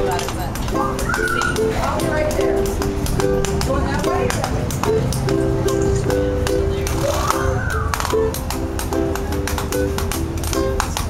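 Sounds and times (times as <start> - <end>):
ukulele strumming: 0.0 - 11.0
washboard tapping: 0.0 - 11.0.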